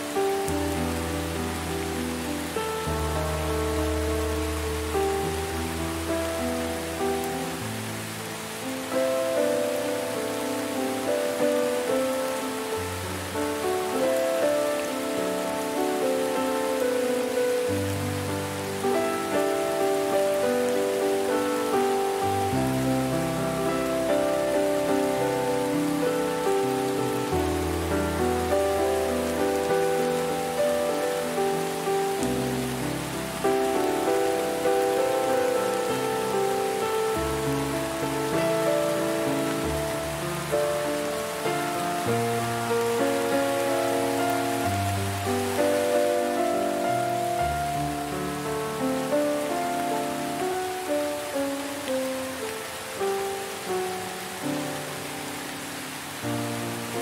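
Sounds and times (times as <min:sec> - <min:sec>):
slow relaxation music: 0:00.0 - 0:57.0
steady rain: 0:00.0 - 0:57.0.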